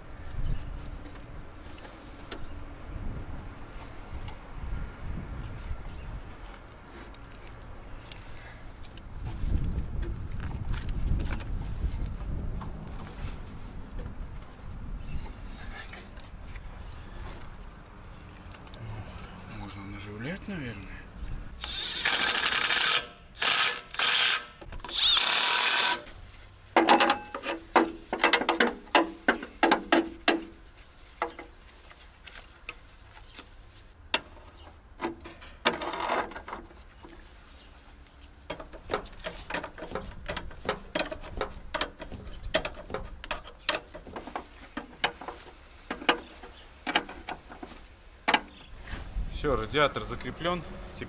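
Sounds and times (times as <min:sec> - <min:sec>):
power tool bursts: 0:21.6 - 0:26.0
wrench clicks and metal knocks: 0:26.8 - 0:30.5, 0:38.5 - 0:45.3.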